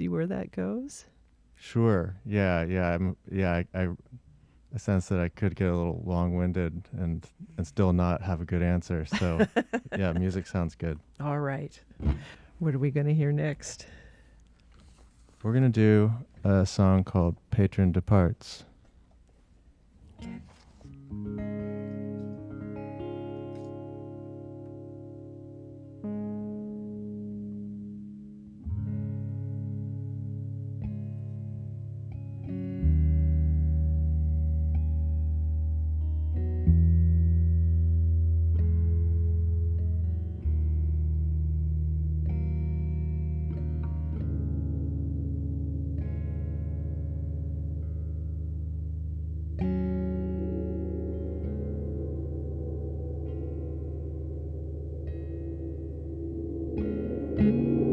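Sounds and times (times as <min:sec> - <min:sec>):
slow instrumental band music: 0:42.6 - 0:57.9.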